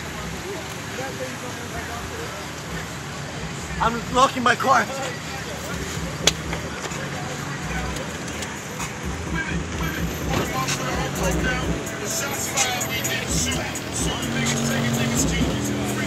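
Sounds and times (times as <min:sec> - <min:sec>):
car engines driving past: 0:00.0 - 0:16.0
people's voices: 0:00.0 - 0:16.0
music: 0:05.6 - 0:16.0.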